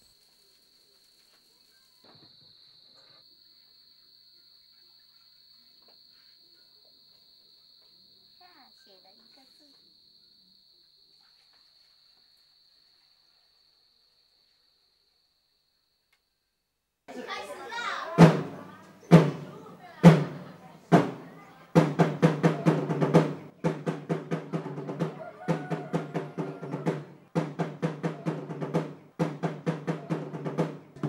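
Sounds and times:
high-pitched insect trill: 0:00.0 - 0:15.6.

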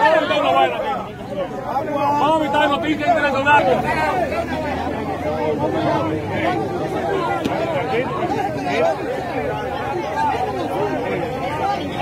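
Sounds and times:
babble of overlapping voices: 0:00.0 - 0:12.0.

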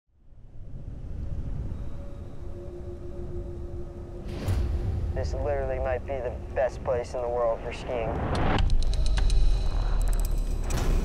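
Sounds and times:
faint sustained tone: 0:00.2 - 0:08.1
low rumbling cinematic drone: 0:00.2 - 0:11.0.

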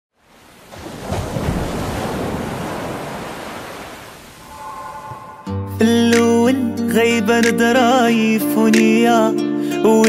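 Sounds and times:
wind: 0:00.1 - 0:06.5
sea surf washing onto beach: 0:00.2 - 0:04.6.

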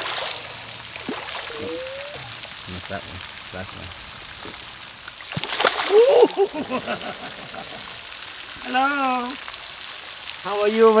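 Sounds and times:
fish splashing at water surface: 0:00.0 - 0:03.4, 0:04.2 - 0:08.5
water gurgling and dripping: 0:00.0 - 0:11.0.

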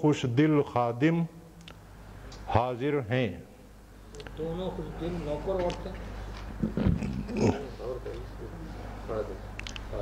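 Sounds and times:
man's throaty sound: 0:06.6 - 0:07.8.

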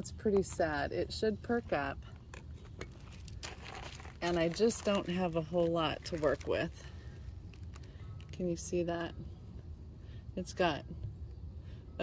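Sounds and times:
tomato stem rustling and crackling: 0:02.2 - 0:08.4.

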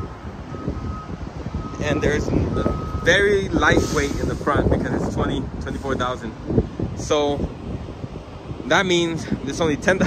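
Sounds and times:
faint reversing alarm beeping: 0:00.0 - 0:04.0
wind rumbling on microphone: 0:00.0 - 0:10.0.

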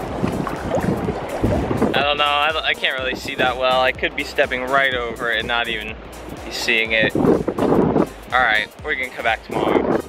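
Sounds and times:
water sloshing over rocks: 0:00.0 - 0:03.6
wind rumbling on microphone: 0:00.0 - 0:10.0.

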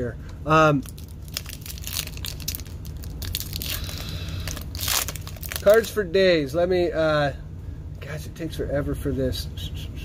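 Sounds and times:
foil wrapper tearing and crinkling: 0:00.8 - 0:06.0.

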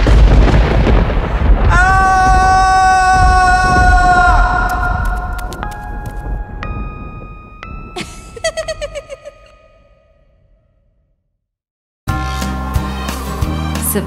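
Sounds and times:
thunder crash rumbling: 0:00.0 - 0:09.0.

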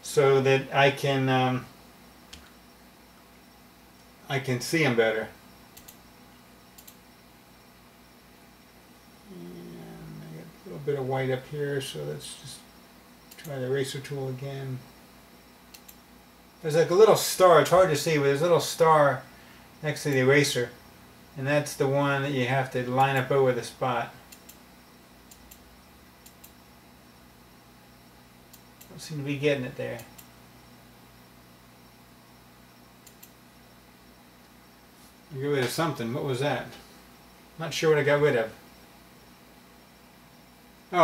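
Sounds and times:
man speaking: 0:00.0 - 0:01.7, 0:04.2 - 0:05.3, 0:09.7 - 0:12.7, 0:13.4 - 0:14.8, 0:16.6 - 0:20.8, 0:35.3 - 0:36.8, 0:37.6 - 0:38.6
low steady hum: 0:00.0 - 0:41.0
computer mouse clicks: 0:05.8 - 0:06.0, 0:06.8 - 0:07.0, 0:13.3 - 0:13.6, 0:15.7 - 0:16.0, 0:24.3 - 0:24.6, 0:25.3 - 0:25.6, 0:26.2 - 0:26.6, 0:33.0 - 0:33.4.

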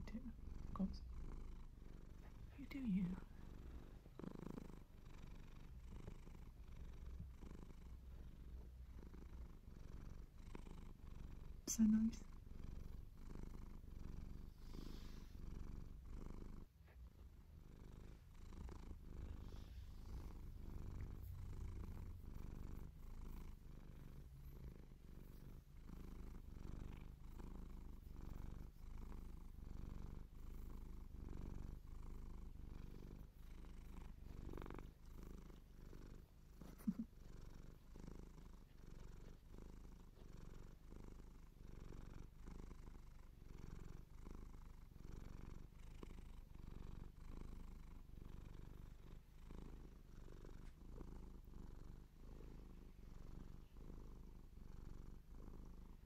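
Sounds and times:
cat purring: 0:00.0 - 0:56.0.

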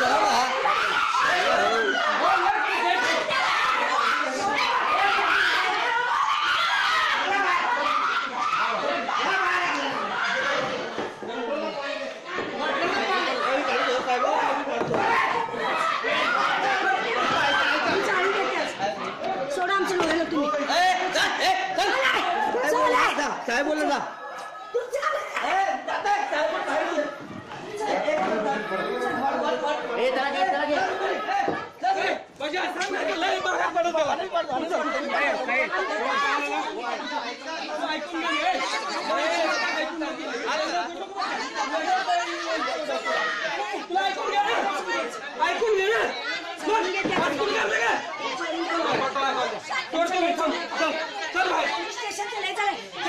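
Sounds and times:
people talking at once: 0:00.0 - 0:53.0.

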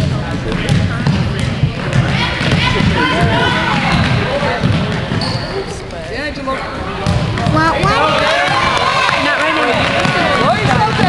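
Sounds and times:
voices of players and spectators: 0:00.0 - 0:11.0
basketball dribbling on hardwood: 0:10.0 - 0:11.0.

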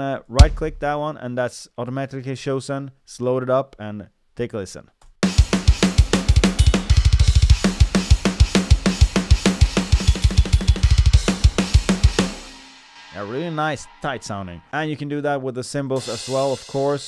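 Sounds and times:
double bass kick drum: 0:00.4 - 0:01.0, 0:05.5 - 0:12.4
snare drum hits: 0:00.4 - 0:01.0
cymbals ringing: 0:09.9 - 0:14.8.

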